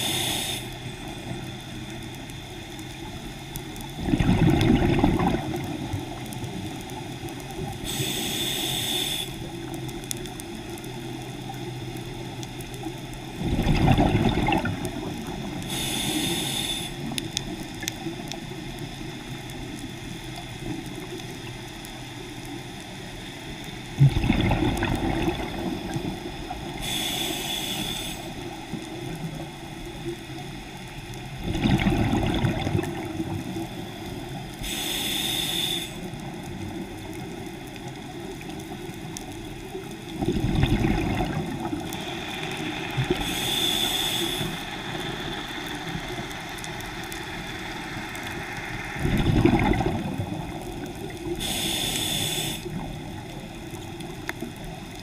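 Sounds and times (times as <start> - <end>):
regulator hiss on inhale: 0.0 - 3.9, 6.1 - 13.4, 15.0 - 23.9, 25.6 - 31.4, 32.9 - 37.4, 41.6 - 49.3, 50.4 - 54.9
rumble of exhaled bubbles: 3.8 - 8.0, 13.3 - 16.0, 23.9 - 27.0, 31.3 - 34.6, 36.2 - 51.7.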